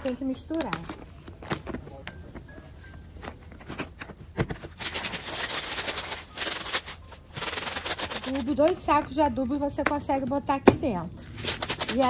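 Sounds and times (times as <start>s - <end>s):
granules rattling in plastic container: 11.3s - 12.0s.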